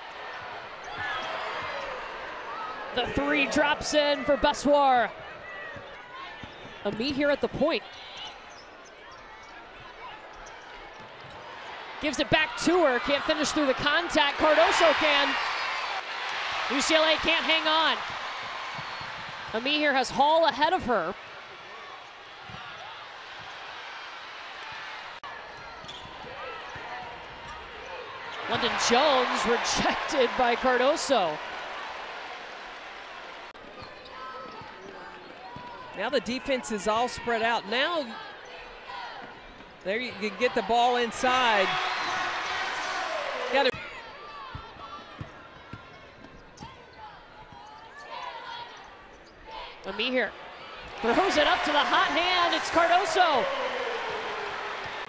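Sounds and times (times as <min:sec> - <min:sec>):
arena crowd cheering: 0:00.0 - 0:07.6, 0:09.8 - 0:45.2, 0:49.5 - 0:55.0
crowd noise: 0:00.0 - 0:55.0
shoe squeaks on court: 0:08.1 - 0:09.6, 0:25.6 - 0:26.8.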